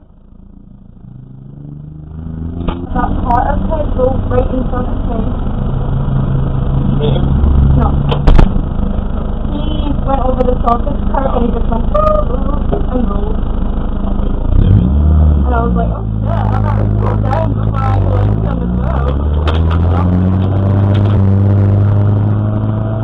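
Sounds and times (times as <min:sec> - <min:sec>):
race car engine idling: 0:00.0 - 0:23.0
muffled talking: 0:09.4 - 0:14.8, 0:15.5 - 0:21.2.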